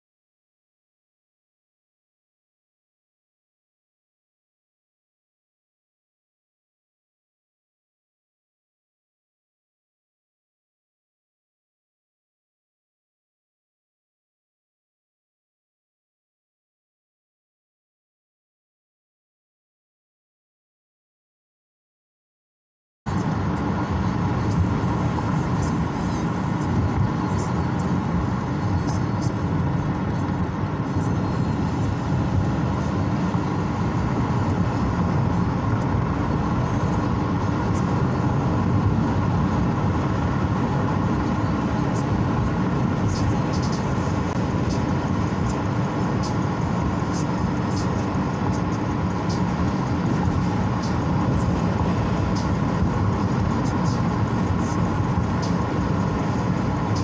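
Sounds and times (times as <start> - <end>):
car road noise rumble: 23.1 - 57.0.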